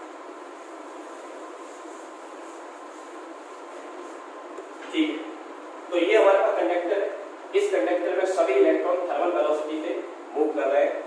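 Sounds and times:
steady room background noise: 0.0 - 11.0.

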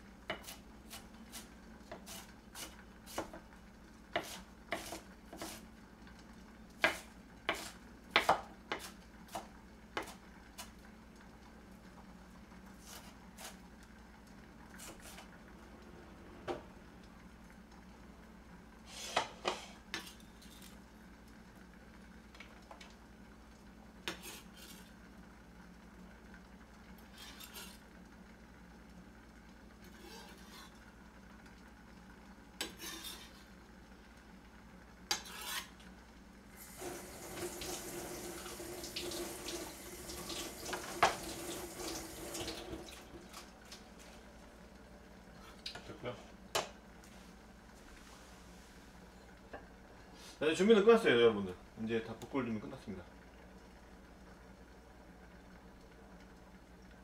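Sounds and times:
tap running: 36.6 - 43.8.

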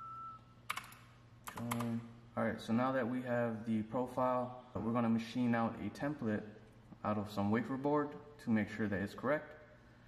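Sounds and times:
computer keyboard clicks: 0.7 - 2.0.

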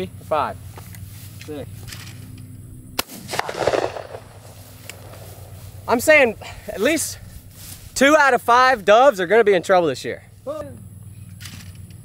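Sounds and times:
shotgun shot: 3.0 - 6.0.

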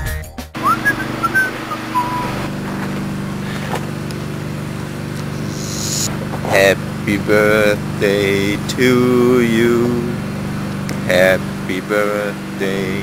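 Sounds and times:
brief voices: 0.6 - 2.5, 5.2 - 8.8
engine idling hum: 0.6 - 13.0.

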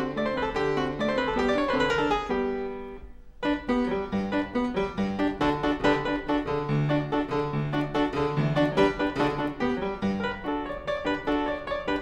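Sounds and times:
fortepiano playing: 0.0 - 12.0.

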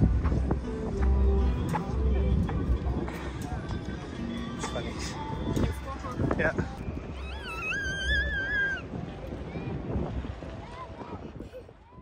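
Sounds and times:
child's high-pitched squeal: 7.2 - 8.9.

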